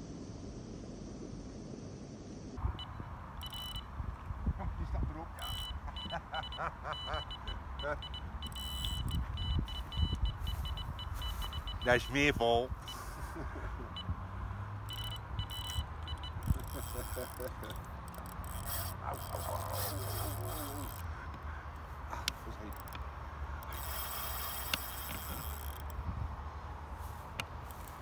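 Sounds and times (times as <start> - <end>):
low rumble of road traffic: 0.0 - 28.0.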